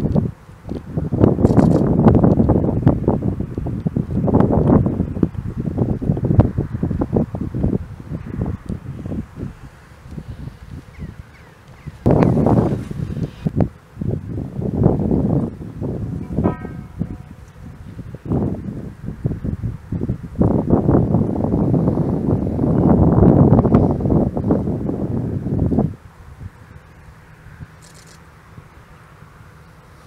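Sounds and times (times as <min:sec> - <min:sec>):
wind buffeting microphone: 0:00.0 - 0:30.0
brief pitched call: 0:16.2 - 0:17.8.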